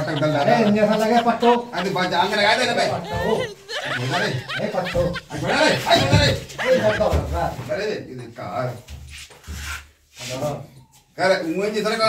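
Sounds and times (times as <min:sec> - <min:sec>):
man speaking: 0:00.0 - 0:07.7.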